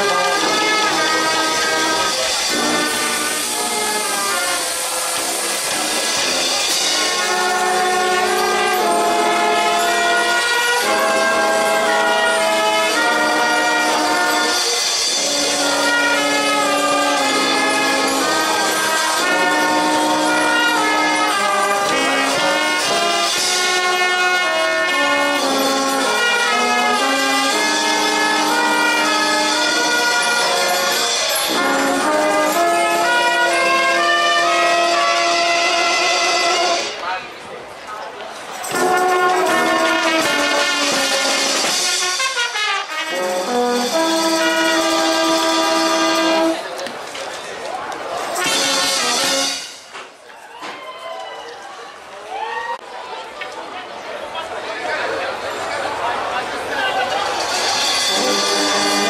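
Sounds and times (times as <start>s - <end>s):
brass band sustained chords: 0.0s - 37.2s, 38.6s - 46.8s, 48.2s - 49.9s, 54.4s - 59.0s.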